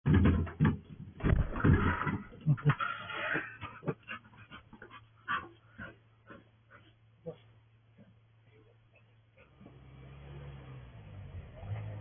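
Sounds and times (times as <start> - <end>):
dog panting: 3.6 - 8.1
footsteps on porch boards: 4.2 - 7.1.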